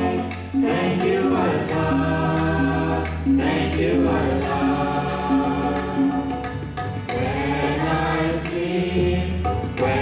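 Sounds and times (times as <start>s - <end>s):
men singing in unison: 0.0s - 6.5s, 7.1s - 10.0s.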